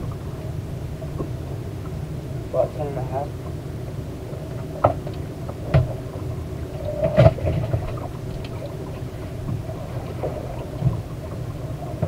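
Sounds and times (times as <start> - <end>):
low rumble aboard boat: 0.0 - 12.0.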